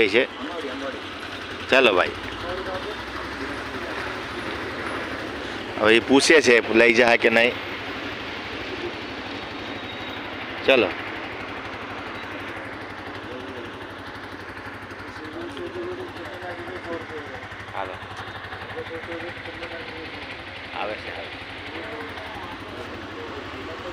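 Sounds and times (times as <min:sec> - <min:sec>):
people talking: 0:00.0 - 0:07.6, 0:08.5 - 0:09.2, 0:10.6 - 0:11.0, 0:13.1 - 0:13.9, 0:15.0 - 0:18.0, 0:18.6 - 0:23.9
street traffic noise: 0:00.0 - 0:23.9.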